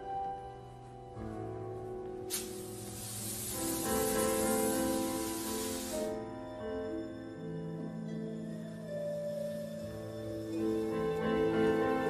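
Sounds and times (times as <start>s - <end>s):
soft music of long held notes: 0.0s - 12.0s
fog machine hissing: 2.3s - 6.3s.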